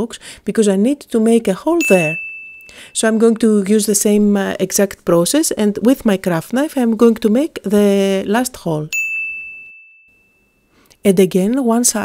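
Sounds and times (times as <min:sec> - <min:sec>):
bright ding chime: 0:01.8 - 0:03.5, 0:08.9 - 0:10.8.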